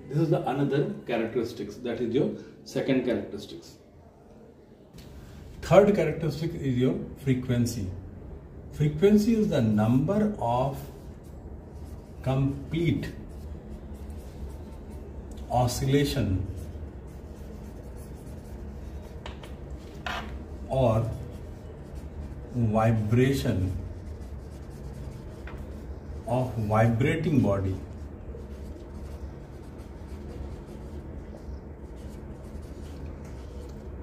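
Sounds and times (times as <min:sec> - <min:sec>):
steady low hum: 0:00.0 - 0:34.0
marker writing on whiteboard: 0:10.7 - 0:34.0.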